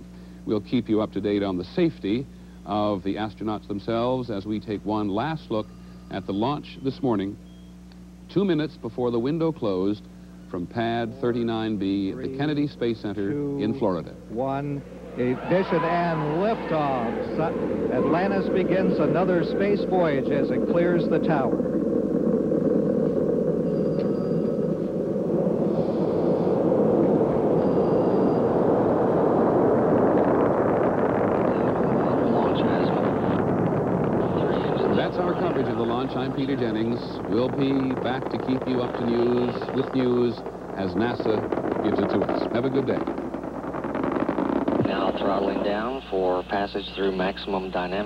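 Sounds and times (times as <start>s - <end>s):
rocket engines rumbling: 0.0s - 48.0s.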